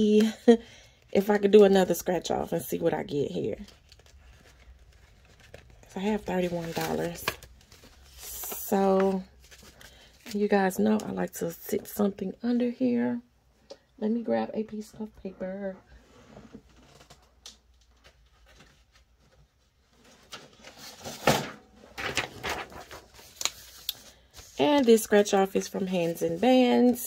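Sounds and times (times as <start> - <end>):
hands handling plastic binder: 3.3 - 11.2, 16.6 - 27.0.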